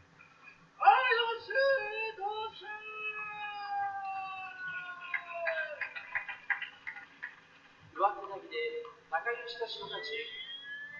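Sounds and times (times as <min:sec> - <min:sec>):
audience hand claps: 0:04.8 - 0:07.8.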